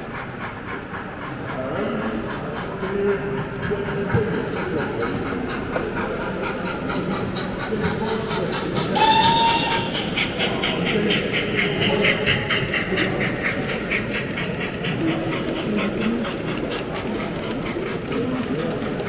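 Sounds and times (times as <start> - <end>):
model steam locomotive chuffing: 0.0 - 19.0
model train whistle: 9.0 - 9.8
murmur of crowd: 9.9 - 19.0.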